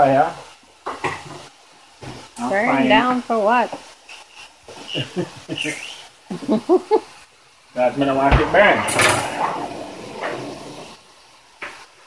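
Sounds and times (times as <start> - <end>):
faint high chirps: 4.8 - 6.1.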